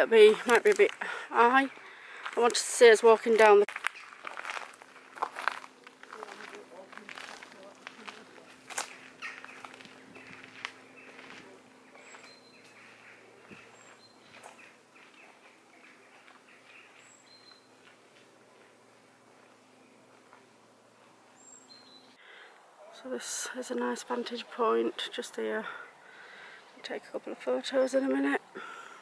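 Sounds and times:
footsteps crunching on gravel: 0:00.2 - 0:22.0
high bird chirps: 0:08.8 - 0:17.9.

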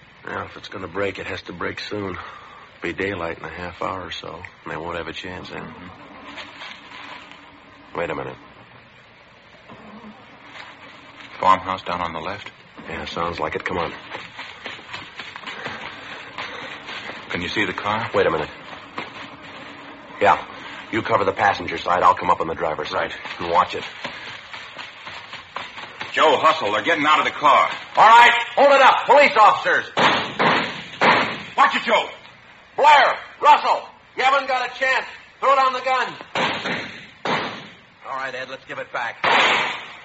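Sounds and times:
low steady noise: 0:00.0 - 0:40.0
soft footsteps: 0:05.4 - 0:29.1.

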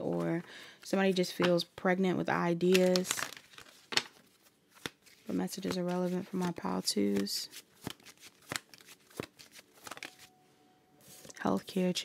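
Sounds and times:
cards being shuffled: 0:02.6 - 0:10.4, 0:11.0 - 0:11.5.

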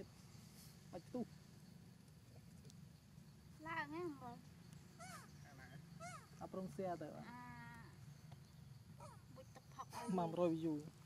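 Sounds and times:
drawn-out vocal call: 0:04.9 - 0:06.4.

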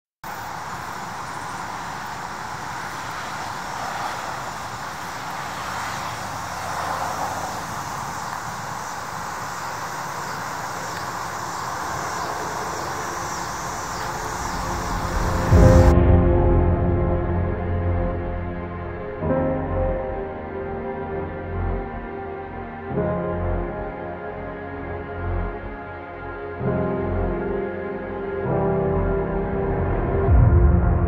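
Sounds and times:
road traffic hum: 0:00.2 - 0:30.4
music with loud low note: 0:14.3 - 0:31.0.

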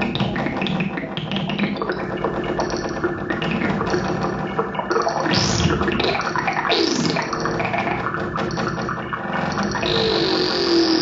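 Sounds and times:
plucked and tapped strings: 0:00.0 - 0:11.0
sustained electronic tones: 0:01.6 - 0:11.0.

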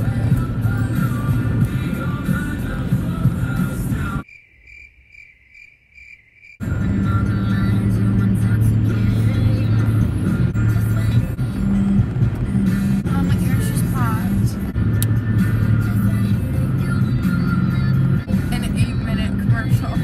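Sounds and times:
loud music with heavy bass: 0:00.0 - 0:04.2
cricket chirping: 0:04.2 - 0:06.6.

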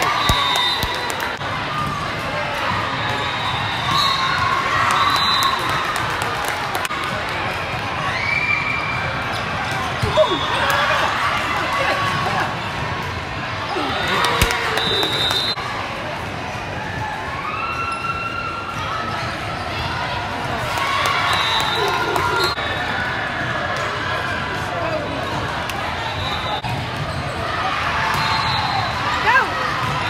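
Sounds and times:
referee's whistle: 0:00.0 - 0:01.2, 0:03.2 - 0:05.7, 0:13.8 - 0:15.6, 0:21.2 - 0:23.0, 0:28.1 - 0:29.0
chatter echoing in gym: 0:00.0 - 0:30.0
murmur of voices: 0:18.4 - 0:30.0.

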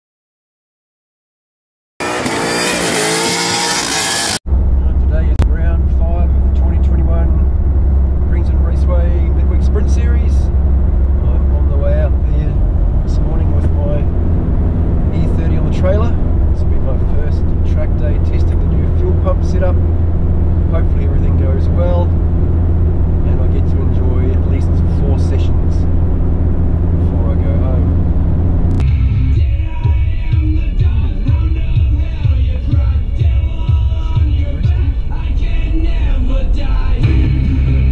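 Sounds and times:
tyres screeching: 0:02.0 - 0:04.4
car engine revving: 0:02.0 - 0:29.8, 0:30.7 - 0:37.9
car engine and road noise in cabin: 0:02.0 - 0:37.9.

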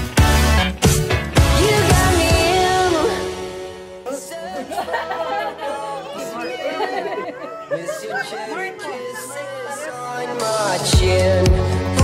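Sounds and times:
background music: 0:00.0 - 0:12.0
people chattering: 0:04.5 - 0:11.4.

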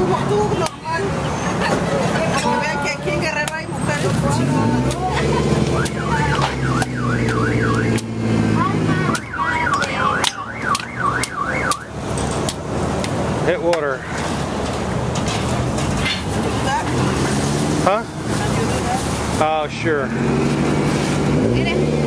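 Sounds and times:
street traffic hum: 0:00.0 - 0:22.0
machete chopping coconut: 0:04.7 - 0:08.4
warbling electronic siren: 0:05.7 - 0:12.0.

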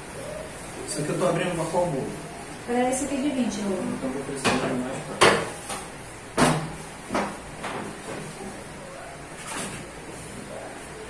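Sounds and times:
knocks on steel worktable: 0:06.4 - 0:08.2.

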